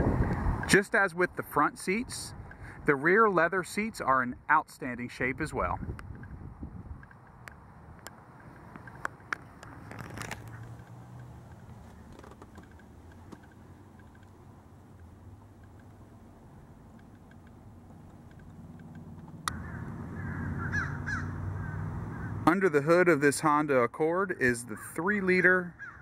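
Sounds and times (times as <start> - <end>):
sharp clicks: 7.0 - 16.0, 16.8 - 19.6
bird calls: 18.3 - 22.4, 24.8 - 26.0.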